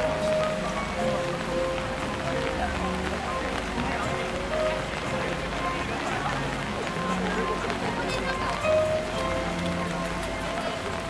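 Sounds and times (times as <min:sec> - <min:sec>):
crowd chatter: 0:00.0 - 0:11.0
music with long held notes: 0:00.0 - 0:11.0
rain on umbrellas and wet ground: 0:00.0 - 0:11.0.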